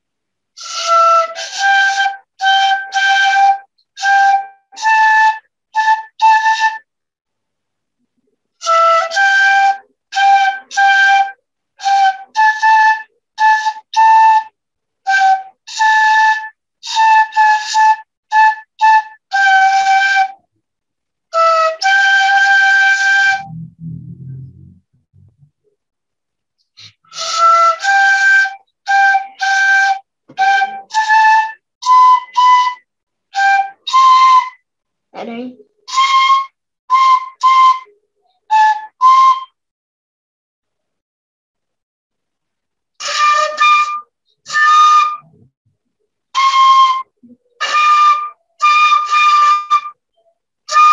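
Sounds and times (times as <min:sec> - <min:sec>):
breathy flute tune: 0:00.5 - 0:06.9, 0:08.6 - 0:20.5, 0:21.3 - 0:25.5, 0:26.6 - 0:34.6, 0:35.9 - 0:39.6, 0:43.0 - 0:45.5, 0:46.3 - 0:50.9
breathy flute notes: 0:21.3 - 0:25.5, 0:26.7 - 0:34.6.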